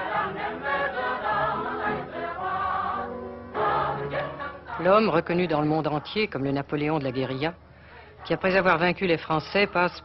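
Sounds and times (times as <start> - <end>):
choir singing held notes: 0.0 - 6.1.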